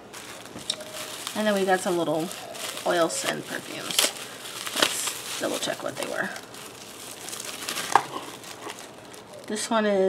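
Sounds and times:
bubble wrap crinkling: 0.0s - 10.0s.

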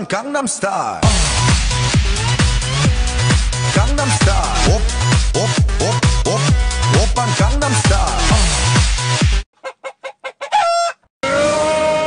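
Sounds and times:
electronic dance music: 1.0s - 9.5s.

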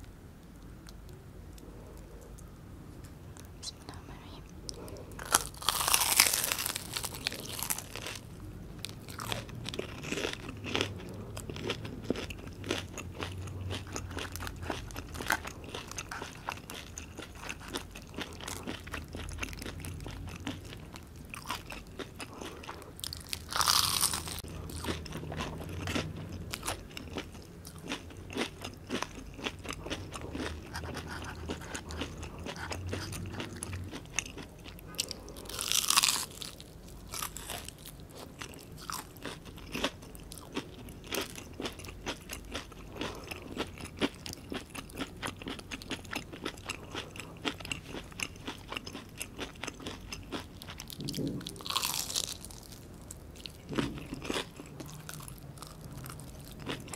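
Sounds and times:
crunchy chewing: 4.6s - 56.9s
crunchy bites: 5.2s - 56.9s.

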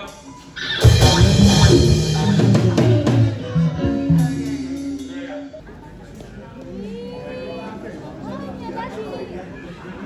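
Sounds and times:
live band playing: 0.0s - 6.2s.

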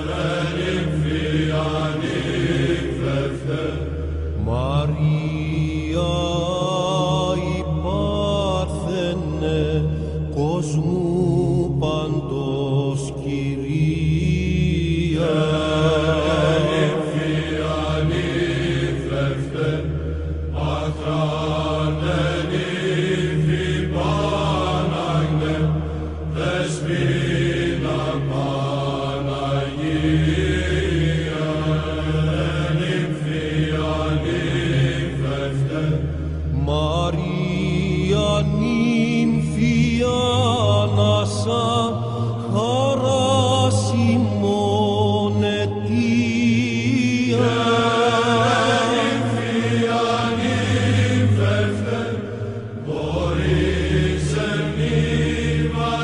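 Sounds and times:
held low vocal drone: 0.0s - 56.0s
ornamented chant melody: 0.0s - 56.0s.

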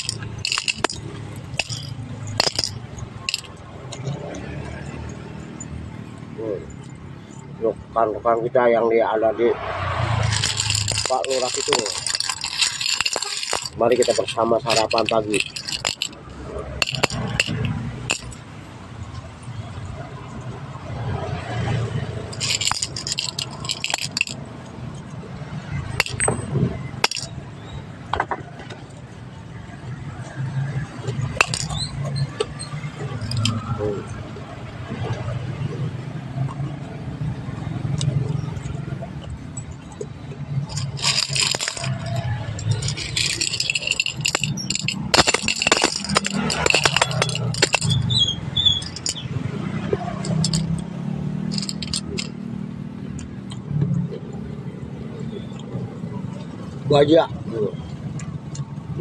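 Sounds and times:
metal objects clinking in glass bowl: 0.0s - 3.6s, 10.2s - 18.4s, 22.3s - 24.4s, 25.9s - 26.4s, 27.0s - 27.3s, 31.2s - 33.8s, 40.7s - 52.4s.

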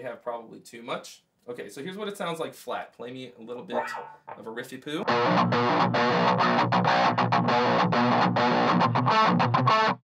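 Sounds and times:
distorted electric guitar riff: 3.7s - 4.4s, 5.0s - 10.0s.

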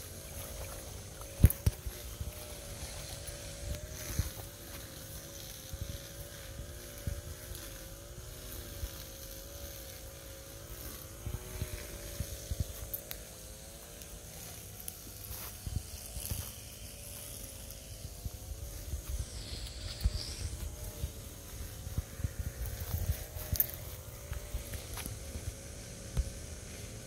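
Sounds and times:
footsteps on leafy dirt path: 0.0s - 27.0s
motor-like drone: 0.0s - 27.0s.

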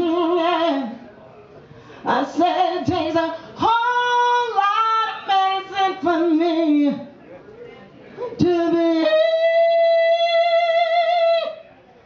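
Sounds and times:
woman singing into a microphone: 0.0s - 1.0s, 2.0s - 7.1s, 8.4s - 11.7s.

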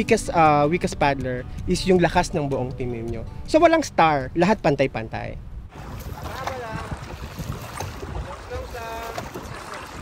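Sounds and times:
wind on microphone: 5.2s - 10.0s
water noise: 5.7s - 10.0s.

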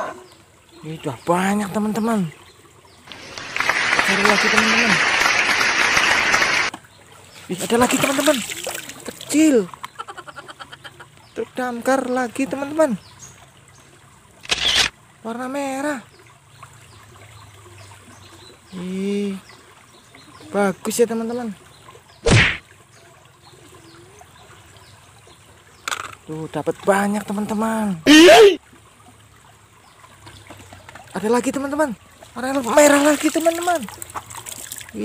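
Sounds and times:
faint trickling water: 0.0s - 5.2s, 6.7s - 35.0s.

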